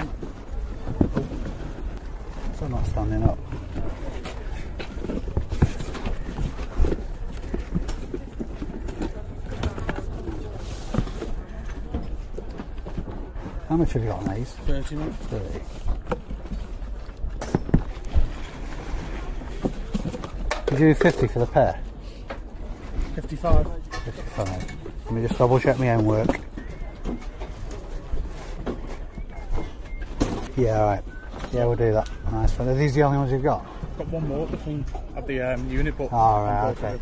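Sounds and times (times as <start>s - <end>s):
distant indistinct voices: 0.0s - 17.2s, 17.9s - 35.2s.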